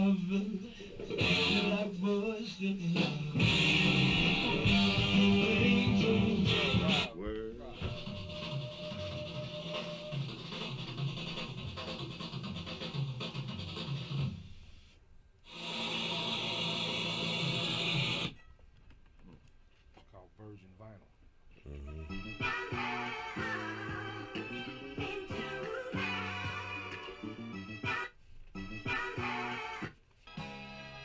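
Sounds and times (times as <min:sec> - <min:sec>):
recorded music excerpts: 0:00.0 - 0:19.5, 0:20.4 - 0:31.0.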